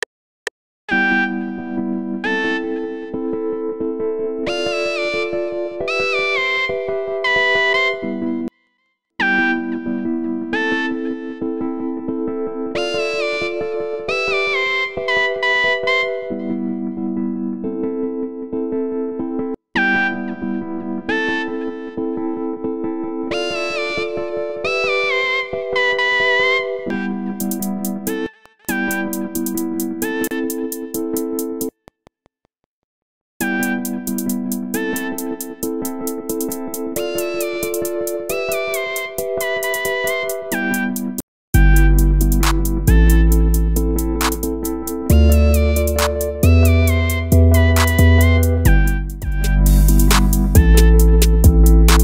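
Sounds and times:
distorted synth lead melody: 41.6 - 52.0
held synth chords: 41.6 - 52.0.

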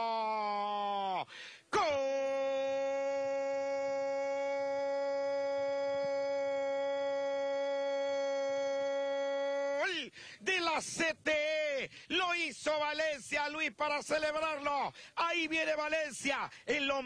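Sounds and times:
man commentator's long goal cry: 0.0 - 10.1
man commentating: 0.2 - 17.0.

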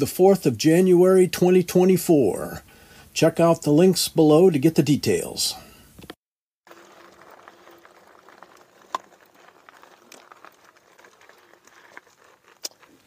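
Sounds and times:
footsteps and tyres on gravel: 6.7 - 13.0.

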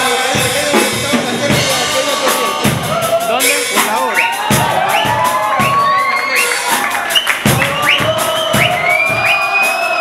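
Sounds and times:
crowd cheering and singing along: 0.0 - 10.0
loud dance music: 0.0 - 10.0.

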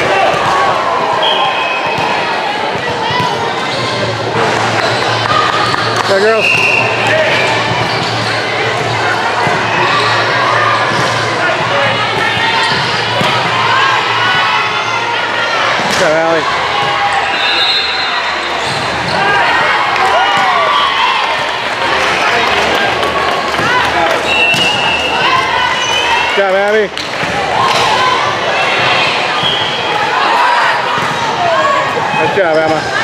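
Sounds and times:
hubbub of voices: 0.0 - 33.0.

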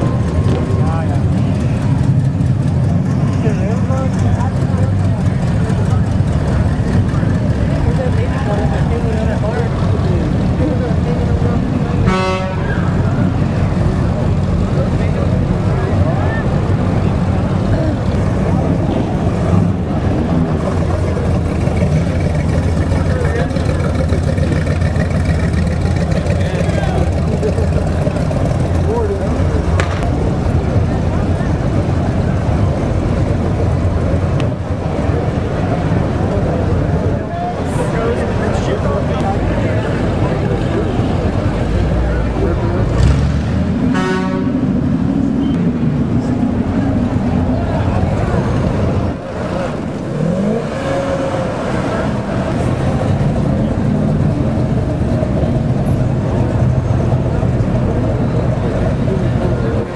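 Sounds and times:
car engines driving past: 0.0 - 59.9
car horn toot: 12.0 - 12.8, 43.9 - 44.6.

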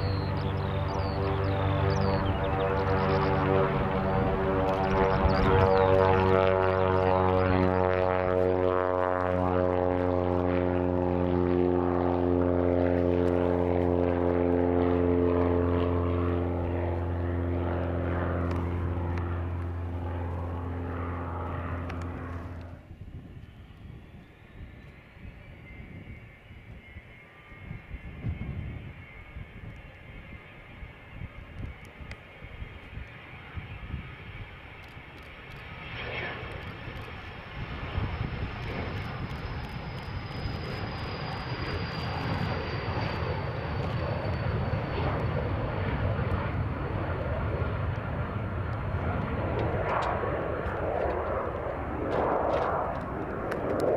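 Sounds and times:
jet engine roar: 0.0 - 53.9
jet engine whine: 0.0 - 53.9
propeller aircraft drone: 0.0 - 53.9.

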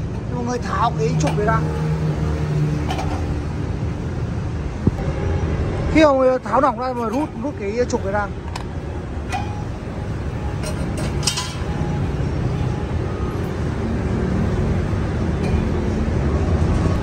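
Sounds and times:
vehicle engine rumble: 0.0 - 17.0.

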